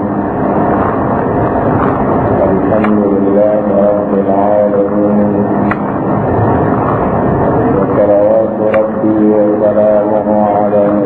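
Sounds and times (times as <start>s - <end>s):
low hum: 0.0s - 11.0s
man preaching into microphone: 2.4s - 5.6s, 7.8s - 11.0s.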